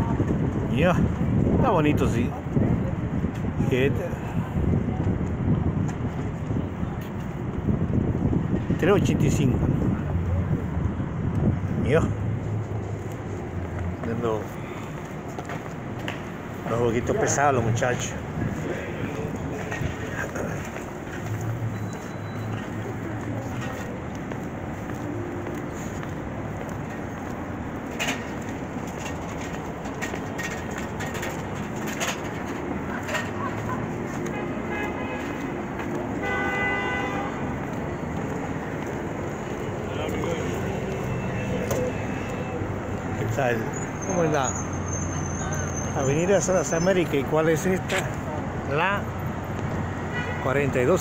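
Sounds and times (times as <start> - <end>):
city street traffic: 0.0 - 51.0
passers-by voices: 0.0 - 51.0
vehicle horn: 34.3 - 35.4, 36.2 - 37.5, 50.1 - 50.6.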